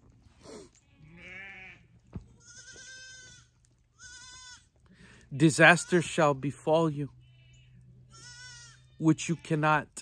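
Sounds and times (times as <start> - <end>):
goats bleating: 0.8 - 10.0.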